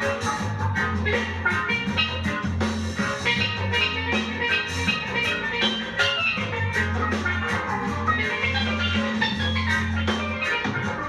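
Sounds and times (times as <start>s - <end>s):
bass guitar: 0.0s - 11.0s
drums: 0.0s - 11.0s
steel pan melody: 0.0s - 11.0s.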